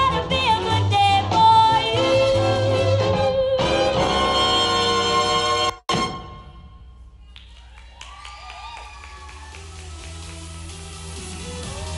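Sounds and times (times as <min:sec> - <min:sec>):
music: 0:00.0 - 0:07.4, 0:08.5 - 0:11.9
audience applauding and cheering: 0:07.2 - 0:11.9
whoops: 0:07.3 - 0:09.9.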